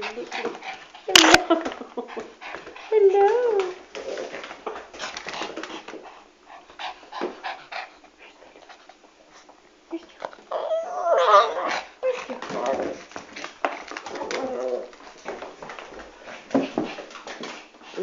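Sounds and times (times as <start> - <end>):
puppy whining: 9.9 - 13.2, 14.0 - 15.2.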